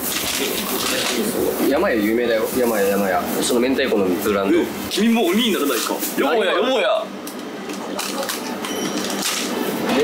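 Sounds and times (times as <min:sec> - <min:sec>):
store hum: 0:00.0 - 0:10.0.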